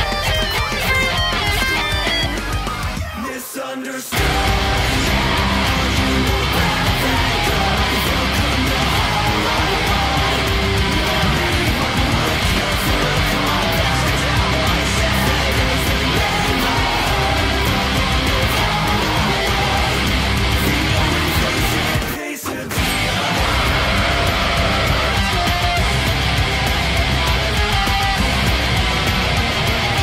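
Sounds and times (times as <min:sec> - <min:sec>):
down-tuned electric guitar: 0:00.0 - 0:03.2, 0:04.2 - 0:30.0
heavy metal band with drums: 0:00.0 - 0:30.0.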